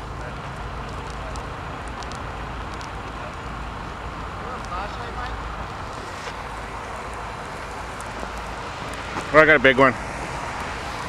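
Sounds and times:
fire crackling and popping: 0:00.0 - 0:11.0
fire roaring: 0:00.0 - 0:11.0.

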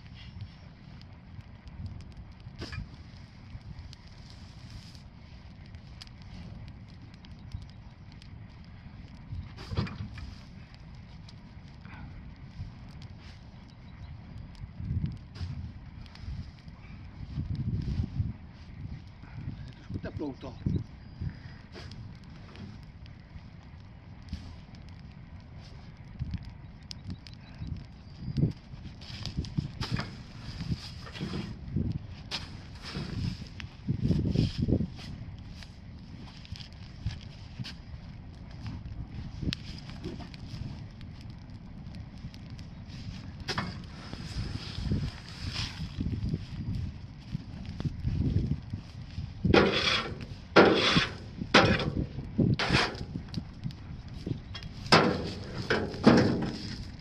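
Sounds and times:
bonfire crackling: 0:00.0 - 0:57.0
pitchfork rustling through straw: 0:49.6 - 0:51.2
pitchfork scraping metal trailer: 0:49.6 - 0:51.9, 0:52.6 - 0:53.0.

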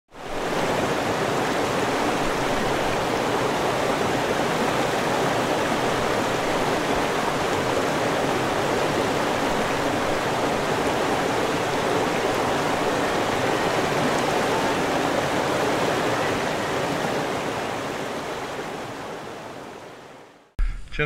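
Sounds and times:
stream rushing over rocks: 0:00.1 - 0:20.5.

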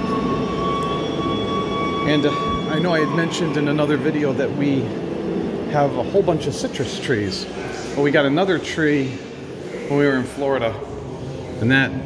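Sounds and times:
mechanical drone with whine: 0:00.0 - 0:12.0.

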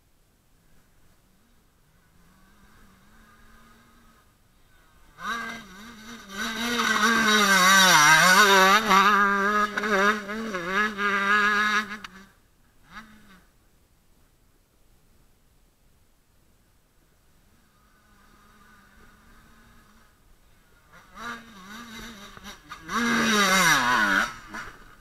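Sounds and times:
motocross bike engine revving: 0:01.3 - 0:13.6, 0:17.4 - 0:25.0.

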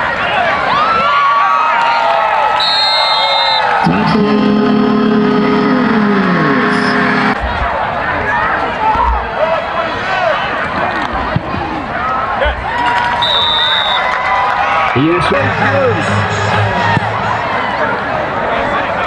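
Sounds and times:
stadium crowd: 0:00.0 - 0:19.0
voices chattering and shouting: 0:01.9 - 0:19.0
short high whistle: 0:02.6 - 0:03.6, 0:13.2 - 0:14.0.

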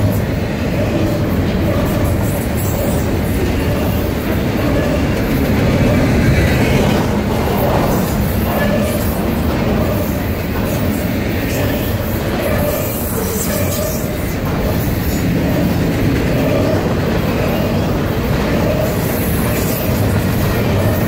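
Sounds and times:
freight train wheels rumbling: 0:00.0 - 0:21.0.

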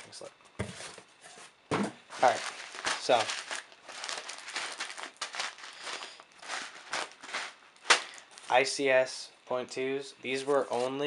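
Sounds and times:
packaging crinkling: 0:02.1 - 0:08.6.

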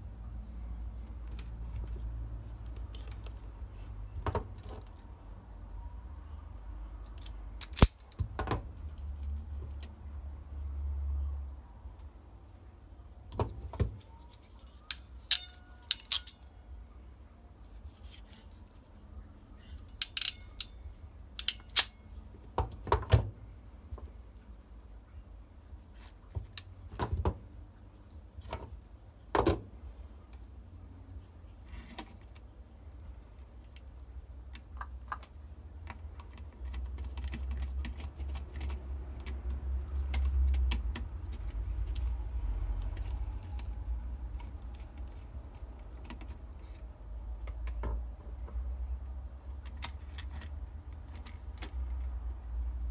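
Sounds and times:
hand tools clicking and snapping: 0:07.0 - 0:08.2, 0:14.9 - 0:16.4, 0:20.0 - 0:20.8, 0:21.4 - 0:22.0.

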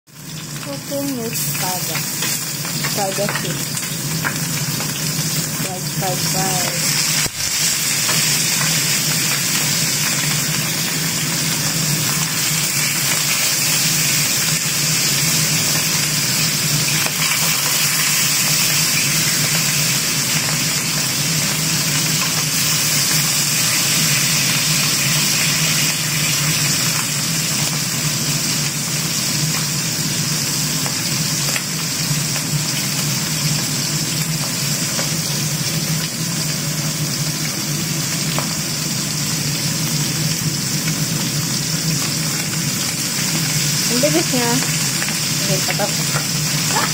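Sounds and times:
fish sizzling in oil: 0:00.1 - 0:46.9.

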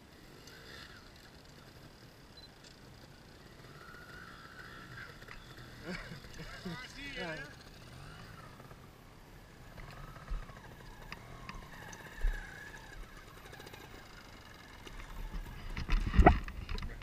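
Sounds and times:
wind rumble on microphone: 0:15.3 - 0:17.0.

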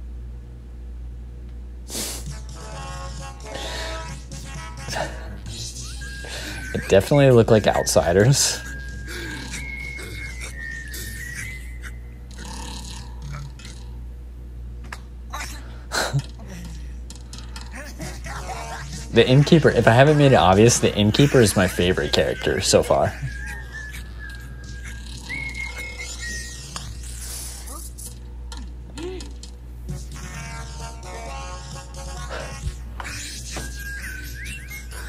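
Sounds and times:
thin high wavering note: 0:04.9 - 0:12.3, 0:19.1 - 0:28.1, 0:33.0 - 0:35.0.

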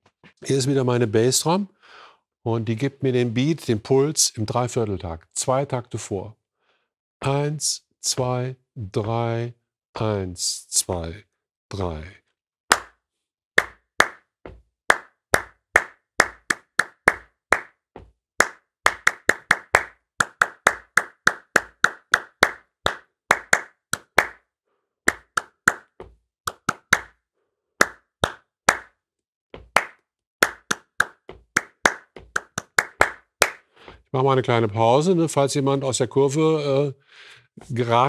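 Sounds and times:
hand claps in rhythm: 0:12.7 - 0:13.0, 0:13.6 - 0:24.5, 0:25.1 - 0:27.2, 0:27.8 - 0:29.0, 0:29.6 - 0:34.0.

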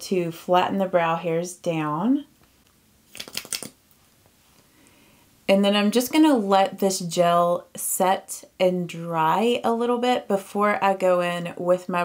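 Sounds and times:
small clicks and rustles: 0:02.4 - 0:04.7.

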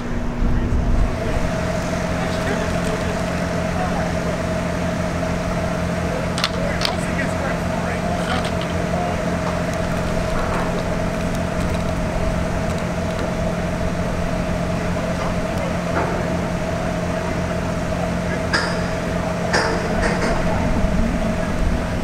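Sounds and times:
steady machine hum: 0:00.0 - 0:22.0.

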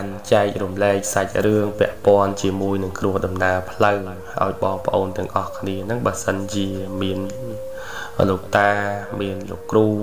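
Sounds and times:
person narrating a story: 0:00.0 - 0:10.0.

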